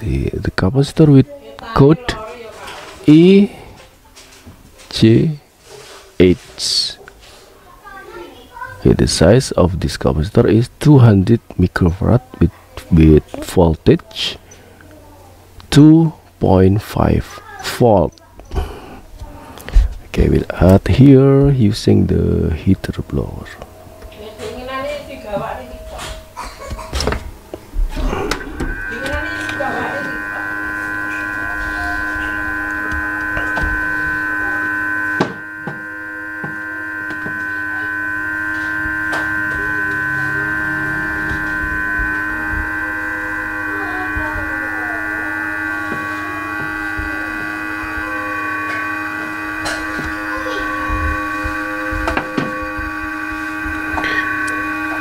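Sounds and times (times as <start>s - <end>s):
hot air blower hum and whine: 0.0s - 55.0s.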